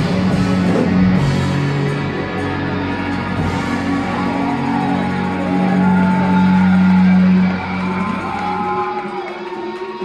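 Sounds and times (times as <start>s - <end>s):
rock band with electric guitars: 0.0s - 10.0s.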